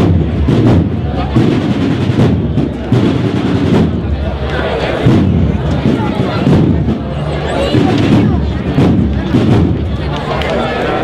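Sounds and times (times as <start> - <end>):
drums beating sharp strokes: 0.0 - 10.4
crowd chatter: 0.0 - 11.0.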